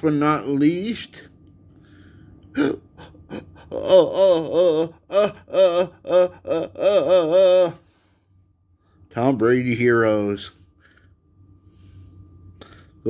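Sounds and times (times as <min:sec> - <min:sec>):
man humming wavering notes: 0:02.5 - 0:07.9.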